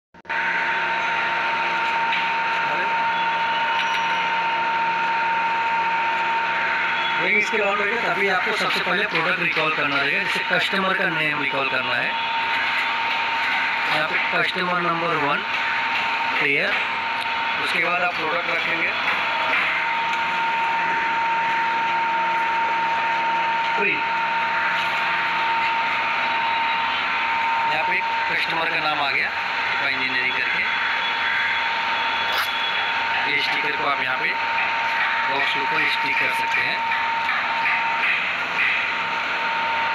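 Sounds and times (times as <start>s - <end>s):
machine whirring with whine: 0.2s - 39.9s.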